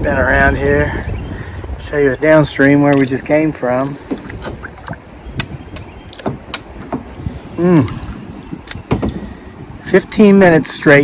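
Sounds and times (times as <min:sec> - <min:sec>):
paddle splashing in water: 0:02.9 - 0:07.3.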